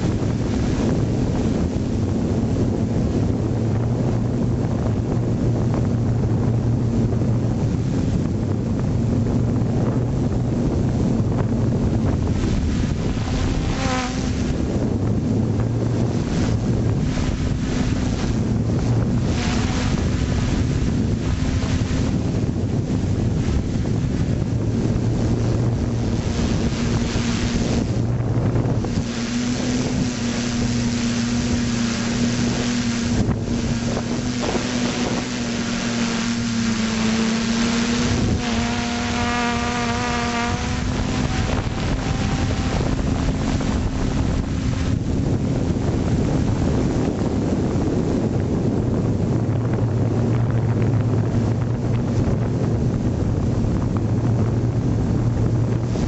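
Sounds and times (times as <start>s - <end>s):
high-pitched whine: 0.0s - 48.0s
drone motors humming: 0.0s - 56.0s
wind buffeting microphone: 0.0s - 56.0s.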